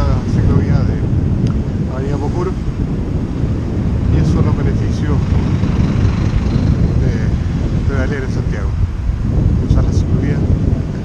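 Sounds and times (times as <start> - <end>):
wind buffeting microphone: 0.0 - 11.0
road traffic passing: 1.0 - 9.4.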